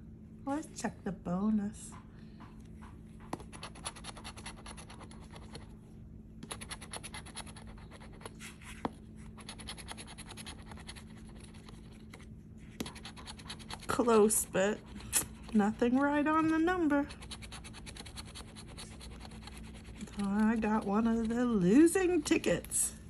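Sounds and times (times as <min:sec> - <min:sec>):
coin scratching a ticket: 0:06.5 - 0:08.3, 0:17.0 - 0:21.4.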